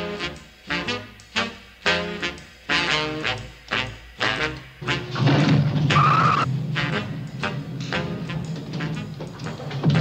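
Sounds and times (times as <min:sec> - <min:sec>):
cartoon underscore music: 0:00.0 - 0:10.0.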